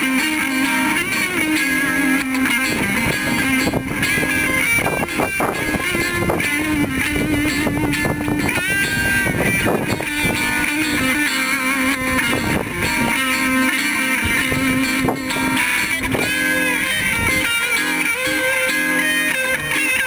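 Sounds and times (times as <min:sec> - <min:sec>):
electric guitar lead notes: 0:00.0 - 0:20.0
low guitar rhythm part: 0:00.0 - 0:20.0.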